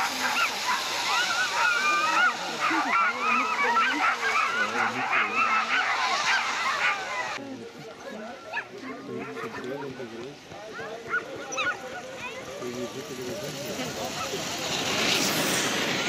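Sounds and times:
sled dogs barking and yelping: 0.0 - 7.4, 8.0 - 10.1, 10.7 - 16.0.

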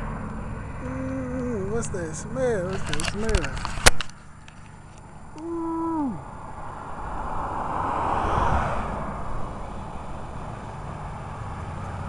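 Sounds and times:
vehicle passing by: 5.6 - 12.0.

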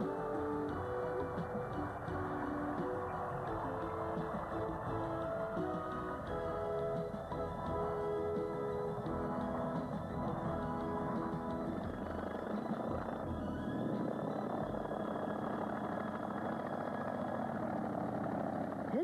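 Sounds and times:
background music with held notes: 0.0 - 17.2
radial aircraft engine running: 0.0 - 19.0.

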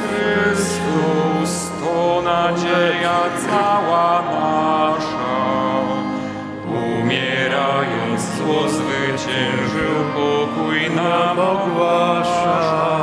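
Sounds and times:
hymn singing: 0.0 - 13.0
organ chords: 0.0 - 13.0.

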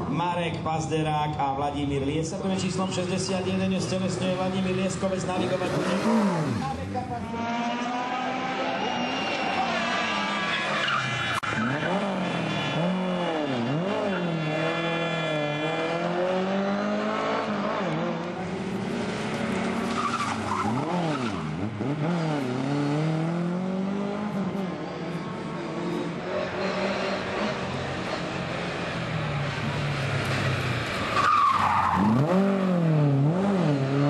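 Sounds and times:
rally car engine revving: 2.7 - 34.0.

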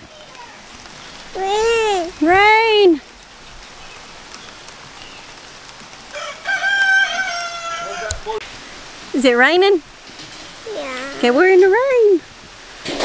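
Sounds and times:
light rain pattering: 0.0 - 13.0
rooster crowing: 6.1 - 8.4.

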